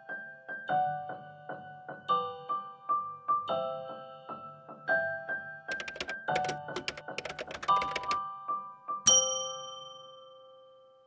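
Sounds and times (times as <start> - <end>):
bell-like chime: 9.1 - 10.9.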